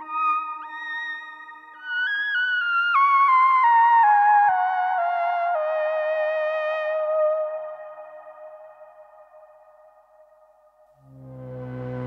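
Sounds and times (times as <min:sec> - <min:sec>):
synthesizer notes: 0:11.0 - 0:12.0.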